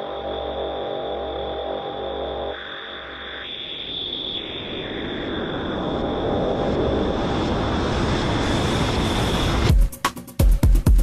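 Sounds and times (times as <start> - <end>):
steady high tone: 0.0 - 7.3
dense wash of noise: 0.0 - 9.7
heavy kick drum: 9.7 - 11.0.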